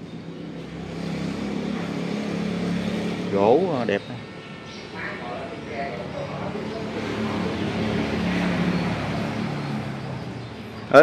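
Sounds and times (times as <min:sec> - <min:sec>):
road vehicle passing by: 0:00.0 - 0:11.0.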